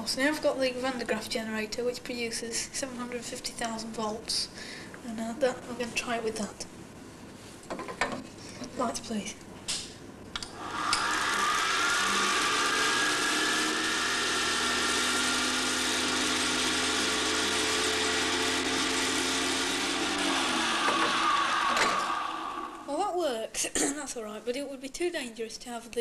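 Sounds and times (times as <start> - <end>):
generator motor whine and hiss: 10.4 - 22.9.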